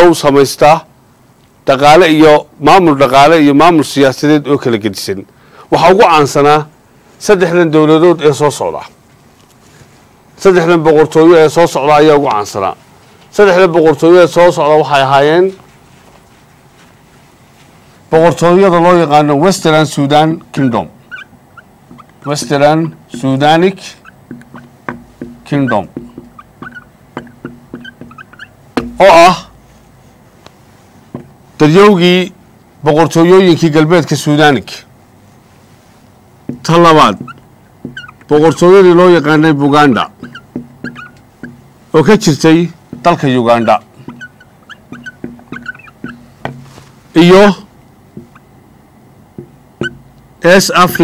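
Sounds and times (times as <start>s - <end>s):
man speaking: 10.4s - 15.6s, 18.1s - 21.0s, 22.2s - 24.0s, 25.4s - 26.0s, 29.0s - 29.6s, 31.6s - 34.9s, 36.6s - 37.3s, 38.3s - 40.2s, 41.9s - 43.9s, 47.1s - 47.7s, 50.4s - 51.0s
marker squeaking on whiteboard: 20.5s - 29.6s, 36.5s - 48.6s, 49.4s - 51.0s.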